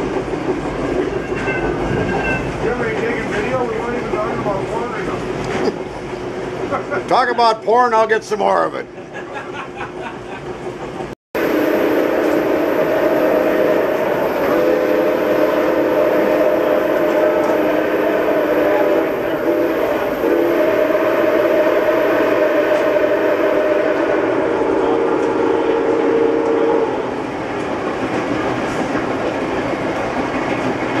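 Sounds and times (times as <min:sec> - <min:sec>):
train rolling clatter: 0:00.0 - 0:11.2, 0:12.2 - 0:31.0
steam whistle chord: 0:11.4 - 0:27.2.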